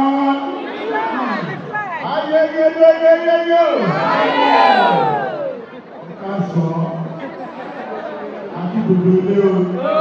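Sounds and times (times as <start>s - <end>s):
group shouting and cheering: 3.8s - 5.8s.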